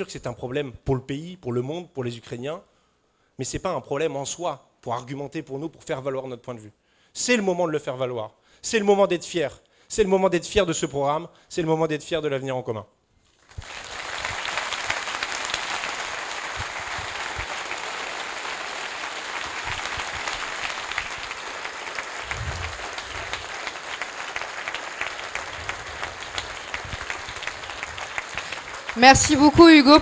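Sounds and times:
large audience applauding: 13.4 - 30.0.

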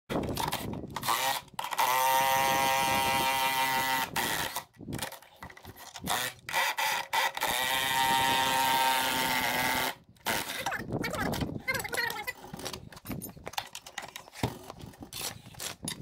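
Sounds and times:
cordless drill running under load: 1.0 - 4.7, 5.8 - 10.7.

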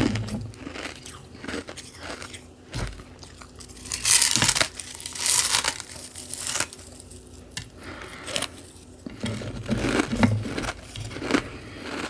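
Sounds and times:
ice crackling and crunching: 3.2 - 7.3.

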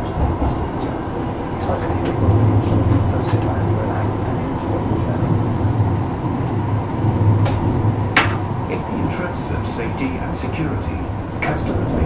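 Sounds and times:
train rumble inside carriage: 0.0 - 12.0.

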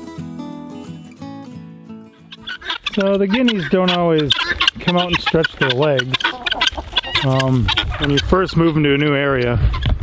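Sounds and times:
acoustic guitar music: 0.0 - 6.0
guinea fowl calling: 2.2 - 10.0.

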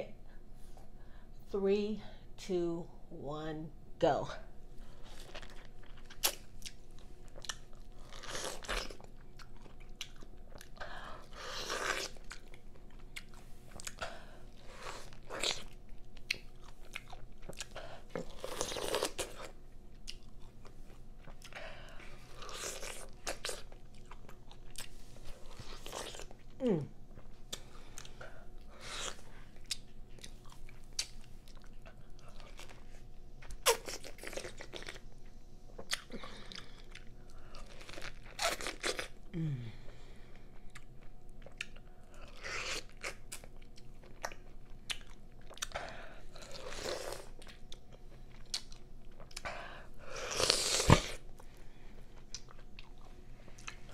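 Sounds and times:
chewing: 4.9 - 26.6, 27.2 - 39.2, 40.6 - 49.6, 50.2 - 53.9
crunching bites of pineapple: 14.6 - 19.5, 32.2 - 35.0, 50.2 - 51.2.

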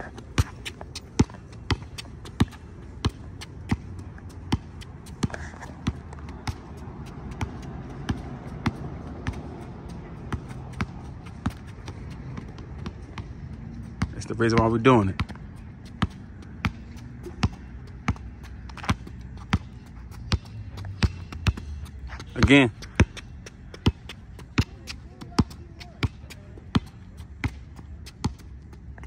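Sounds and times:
basketball bouncing on asphalt: 0.0 - 29.0.

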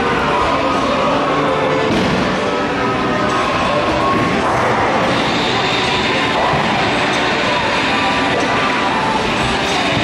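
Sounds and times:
busy bowling alley din: 0.0 - 10.0.

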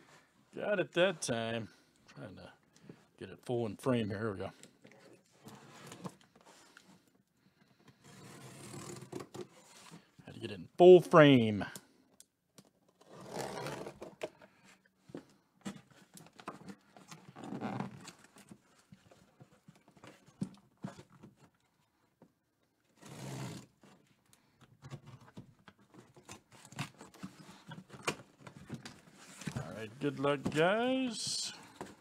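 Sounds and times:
packing tape tearing: 23.0 - 23.7.

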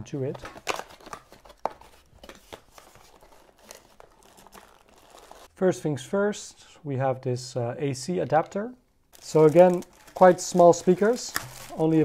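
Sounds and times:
cardboard and plastic rustling: 0.3 - 5.5, 9.1 - 12.0.

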